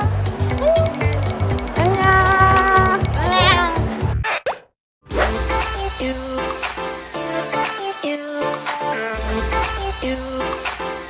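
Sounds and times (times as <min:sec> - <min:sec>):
light background music: 0:00.0 - 0:04.0
person saying goodbye: 0:01.8 - 0:03.9.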